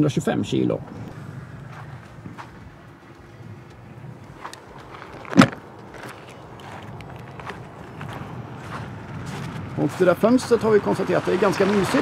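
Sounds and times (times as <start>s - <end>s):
outdoor background noise: 0.0s - 12.0s
soft footsteps: 0.9s - 10.2s
loud thump: 5.3s - 5.6s.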